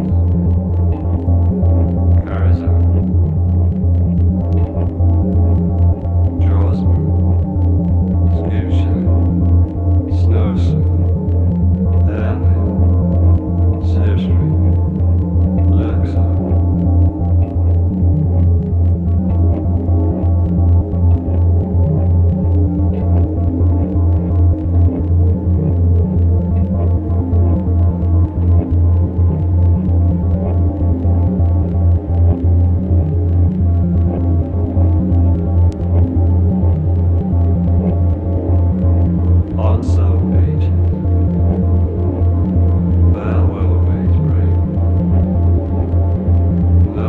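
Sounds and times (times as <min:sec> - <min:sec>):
held synth tones: 0:00.0 - 0:47.0
low throbbing electronic drone: 0:00.0 - 0:47.0.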